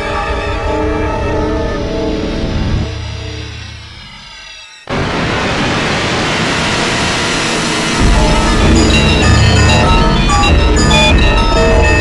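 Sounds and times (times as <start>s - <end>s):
loud rush of noise: 4.9s - 12.0s.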